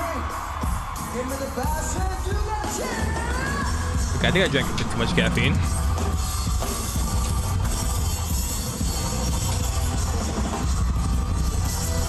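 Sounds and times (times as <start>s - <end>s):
drum kit with heavy bass drum: 0.0s - 12.0s.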